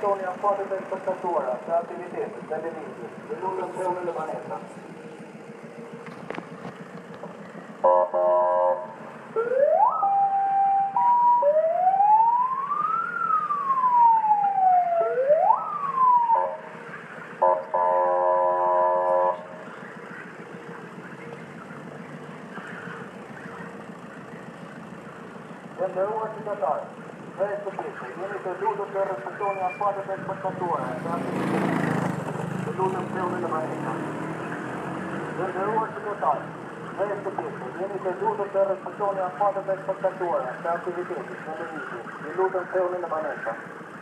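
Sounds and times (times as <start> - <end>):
steady background noise: 0.0 - 44.0
police siren sweeping: 7.6 - 44.0
siren horn blast: 7.8 - 20.5.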